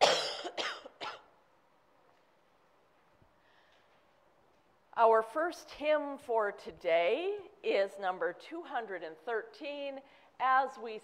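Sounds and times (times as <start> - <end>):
person coughing: 0.0 - 1.3.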